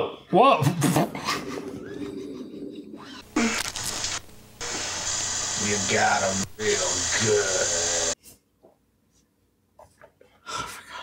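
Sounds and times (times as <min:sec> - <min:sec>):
scratchy noise: 0:03.2 - 0:08.2
tape hiss: 0:03.2 - 0:08.2.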